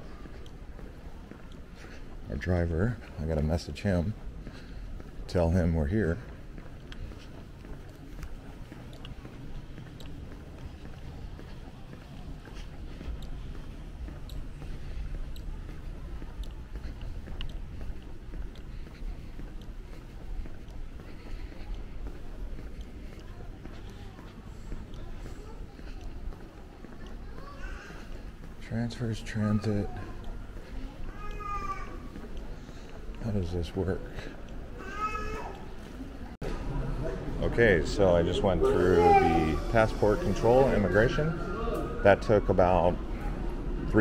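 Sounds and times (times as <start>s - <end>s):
footsteps on tiled floor: 0.0s - 44.0s
low hum of a large hall: 0.0s - 44.0s
steady low rumble: 3.8s - 25.2s, 41.4s - 44.0s.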